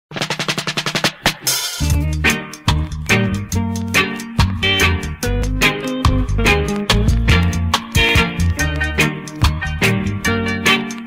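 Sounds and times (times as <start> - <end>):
rapid drum roll: 0.1 - 2.8
reggae band playing: 0.1 - 11.0.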